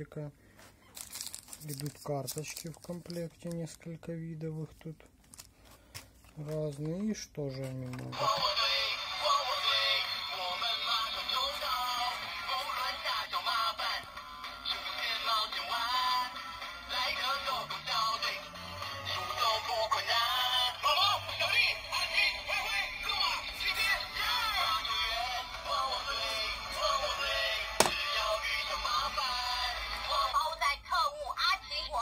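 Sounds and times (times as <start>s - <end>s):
toy watch song with singing: 8.1s - 32.0s.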